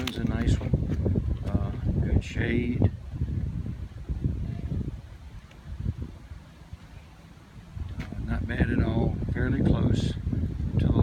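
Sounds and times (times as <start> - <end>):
low uneven rumble on microphone: 0.0 - 11.0.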